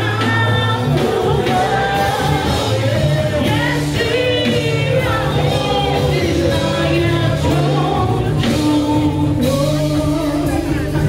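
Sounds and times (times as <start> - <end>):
congregation singing along: 0.0 - 10.2
gospel worship singing: 0.0 - 11.0
held bass notes: 0.0 - 11.0.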